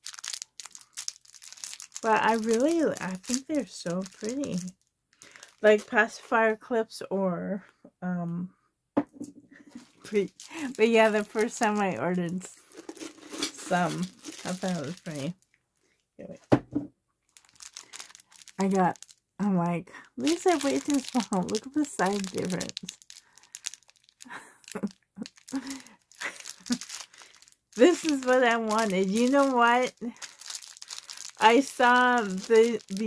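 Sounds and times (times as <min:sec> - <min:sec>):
plastic bag of beads crinkling: 0:00.0 - 0:06.3, 0:09.7 - 0:15.6, 0:17.3 - 0:33.0.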